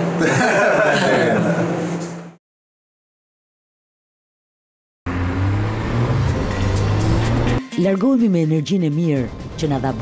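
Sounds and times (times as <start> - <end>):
car driving along road: 5.1 - 7.6.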